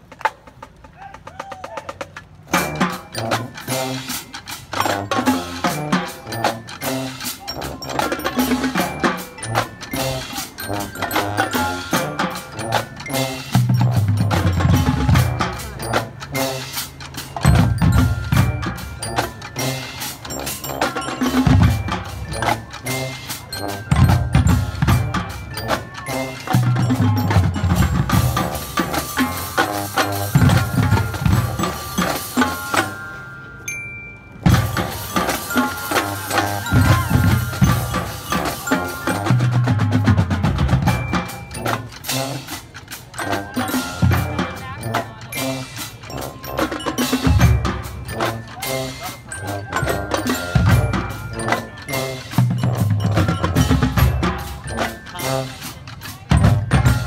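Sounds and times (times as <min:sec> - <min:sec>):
snare and bass drums: 0:00.0 - 0:33.0, 0:34.4 - 0:57.0
mallet keyboards ringing: 0:02.5 - 0:57.0.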